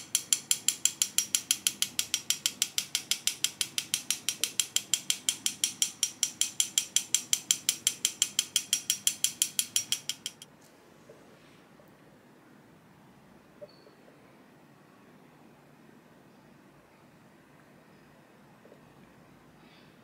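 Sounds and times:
metal sifter clicking: 0:00.0 - 0:10.4.

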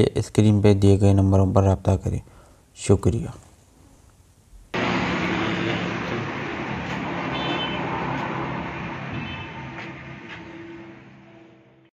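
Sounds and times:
road noise: 0:04.7 - 0:11.9
vehicle engine humming: 0:04.8 - 0:11.8.

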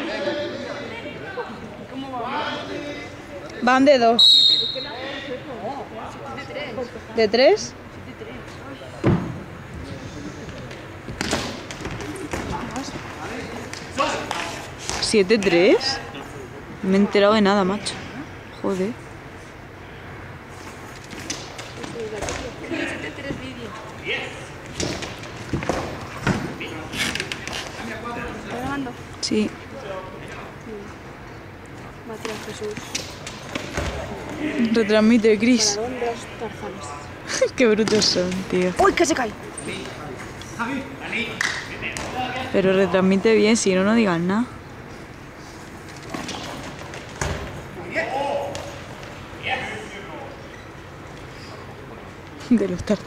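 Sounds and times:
low hall hum: 0:00.0 - 0:53.0.

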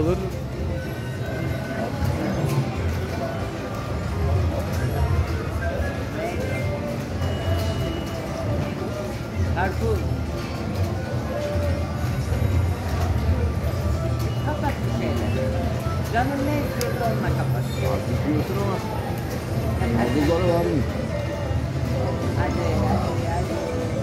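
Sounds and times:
background chatter: 0:00.0 - 0:24.0.

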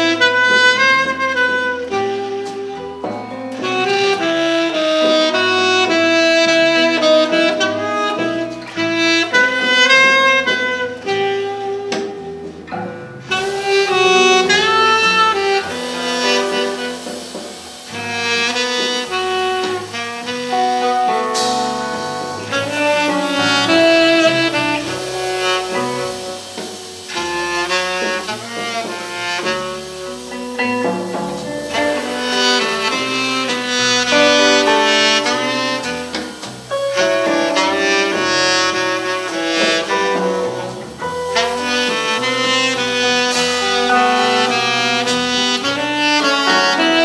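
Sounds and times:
electric guitar: 0:00.0 - 0:47.0
tenor saxophone improvising: 0:00.0 - 0:47.0.

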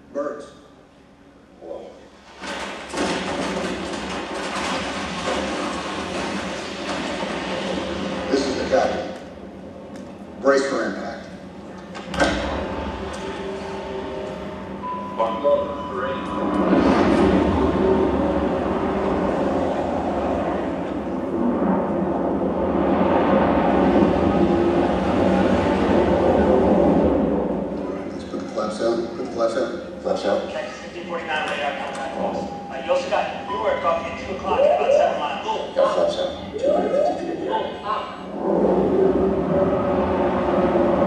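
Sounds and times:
airliner rumble over loudspeakers: 0:05.6 - 0:41.0
faint held tones: 0:13.2 - 0:16.7.

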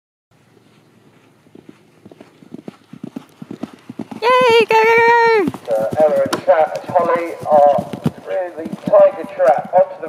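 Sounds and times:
horses galloping over grass: 0:00.4 - 0:10.0.

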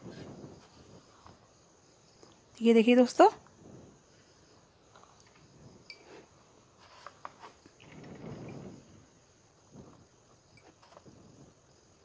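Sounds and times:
soft rustle: 0:00.0 - 0:02.5, 0:03.2 - 0:12.0.

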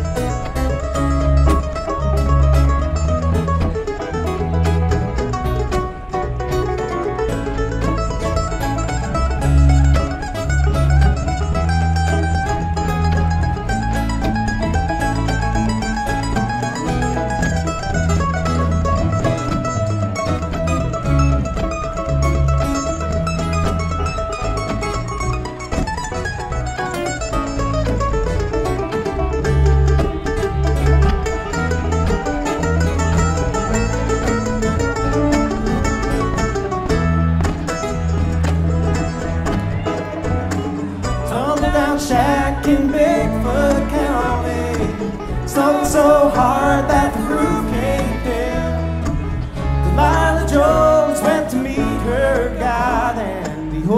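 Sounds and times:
bluegrass string band playing: 0:00.0 - 0:53.9.

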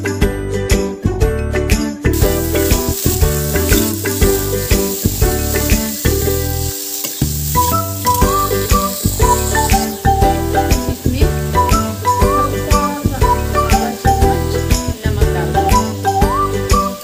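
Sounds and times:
light melodic background music: 0:00.0 - 0:17.0
fruit sizzling in a hot pan: 0:02.1 - 0:17.0
metal spatula stirring: 0:02.4 - 0:10.0.

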